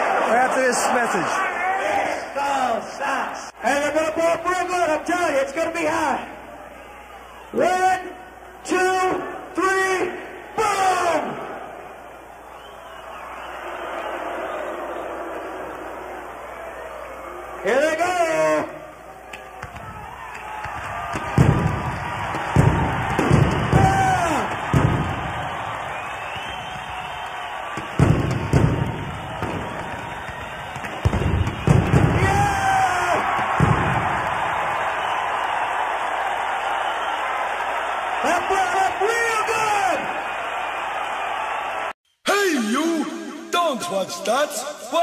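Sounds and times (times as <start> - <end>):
stadium crowd cheering and shouting: 0.0 - 45.0
explosion booms and bangs: 21.2 - 25.4, 27.8 - 29.9, 31.0 - 32.5, 33.4 - 34.3.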